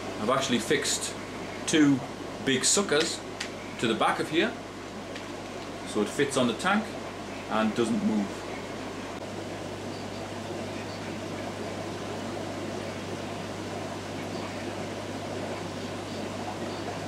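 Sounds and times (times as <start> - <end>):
aquarium filter bubbling: 0.0 - 17.0.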